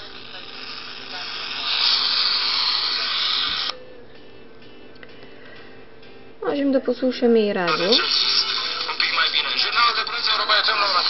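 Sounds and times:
tv static hiss from loudspeaker: 0:00.0 - 0:04.0, 0:06.8 - 0:11.0.

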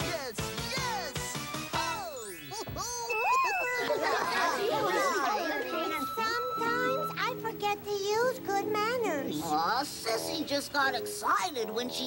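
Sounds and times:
sparkling twinkle sound effect: 0:03.0 - 0:07.6
children laughing: 0:03.1 - 0:06.5
children chattering excitedly: 0:03.1 - 0:09.5.

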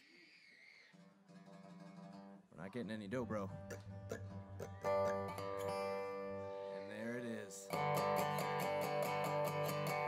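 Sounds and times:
plucked string note ringing: 0:03.2 - 0:10.0.

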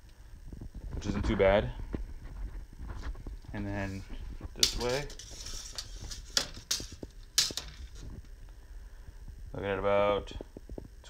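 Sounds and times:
tape measure blade rasp: 0:04.6 - 0:06.5.

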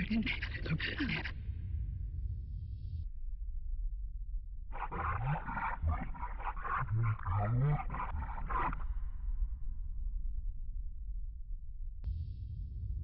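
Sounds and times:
rough growl-like roar: 0:04.8 - 0:08.9.

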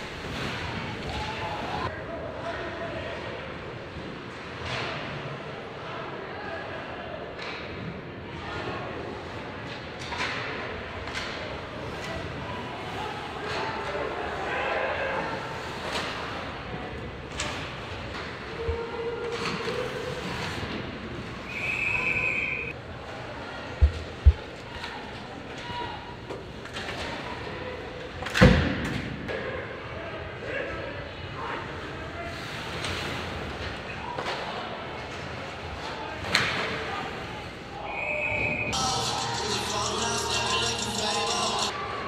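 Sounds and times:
referee's whistle: 0:21.5 - 0:22.7, 0:37.9 - 0:40.7
players' voices: 0:33.8 - 0:42.0
crowd din: 0:38.6 - 0:42.0.

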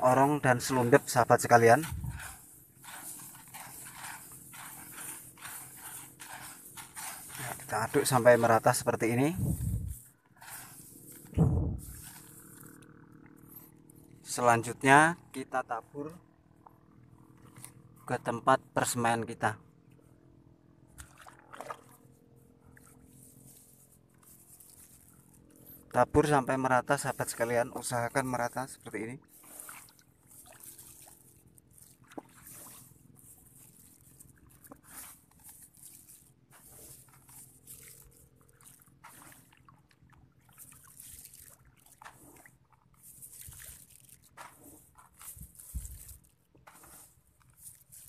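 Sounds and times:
wet grain rustling: 0:00.0 - 0:13.4, 0:22.7 - 0:48.0.

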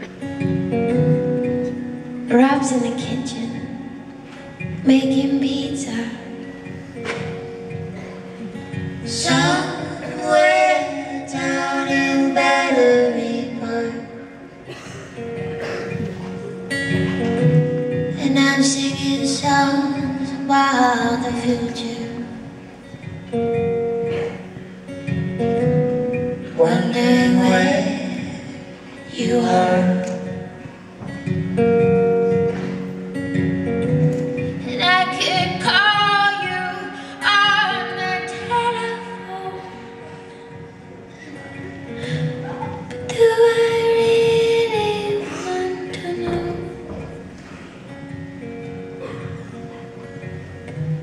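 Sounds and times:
acoustic and electric guitar: 0:00.0 - 0:51.0
person singing: 0:09.0 - 0:14.4, 0:18.0 - 0:22.5, 0:26.4 - 0:30.6, 0:41.9 - 0:47.2.

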